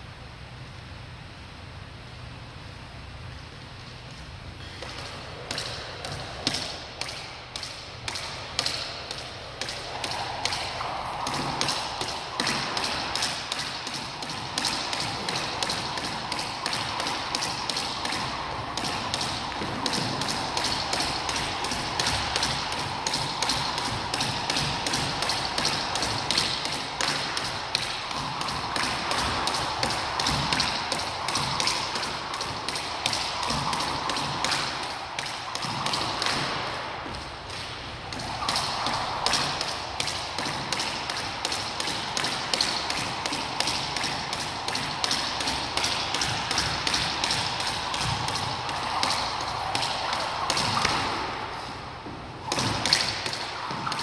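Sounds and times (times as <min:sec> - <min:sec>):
jump rope slapping hardwood floor: 0:04.8 - 0:54.0.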